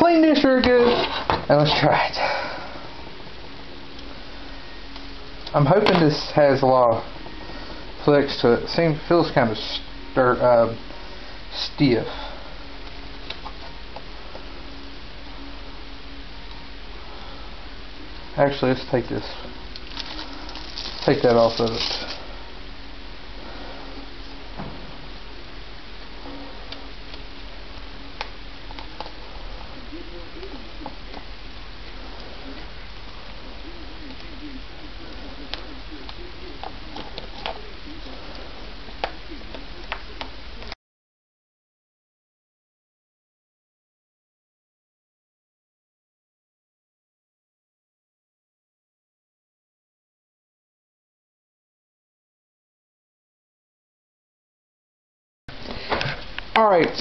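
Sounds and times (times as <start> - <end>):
steady background hiss: 0.0 - 40.7.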